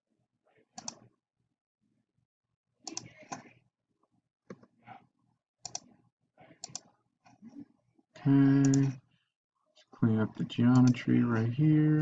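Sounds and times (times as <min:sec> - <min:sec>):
computer mouse clicking: 0:00.8 - 0:01.0, 0:02.8 - 0:03.5, 0:05.6 - 0:05.9, 0:06.6 - 0:06.9, 0:08.6 - 0:08.9, 0:10.7 - 0:11.0.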